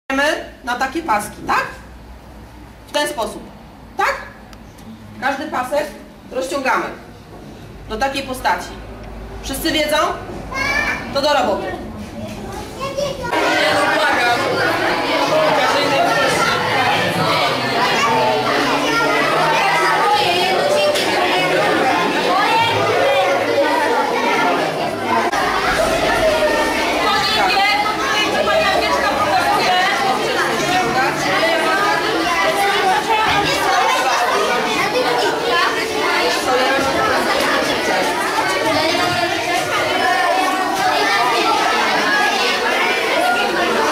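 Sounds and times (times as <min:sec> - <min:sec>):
children talking: 0:00.2 - 0:43.9.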